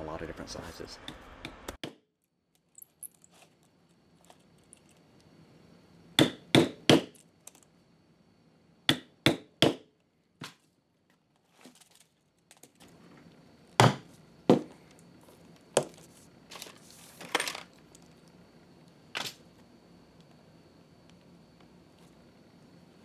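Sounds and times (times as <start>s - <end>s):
handling rustle: 11.1s - 13.0s, 15.2s - 18.2s.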